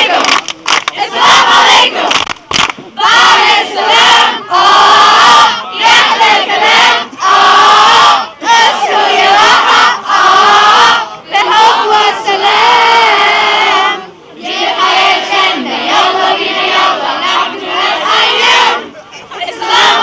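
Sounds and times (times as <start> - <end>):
teenagers chanting in unison: 0.0 - 2.2, 3.0 - 20.0.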